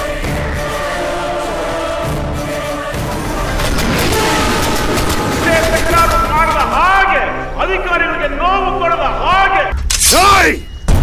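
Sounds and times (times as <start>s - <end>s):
wordless vocal singing: 0.0s - 9.5s.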